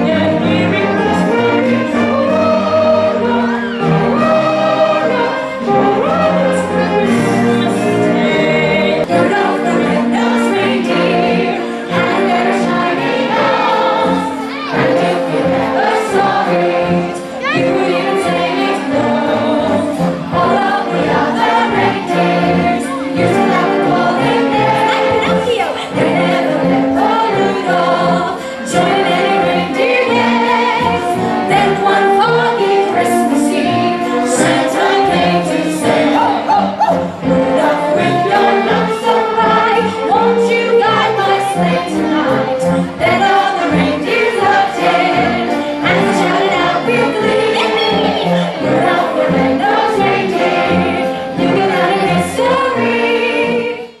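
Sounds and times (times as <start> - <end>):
choir singing a carol: 0.0 - 54.0.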